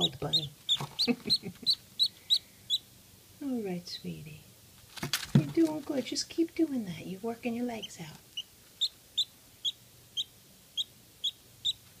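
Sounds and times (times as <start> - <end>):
duckling peeping: 0.0 - 3.0, 7.8 - 12.0.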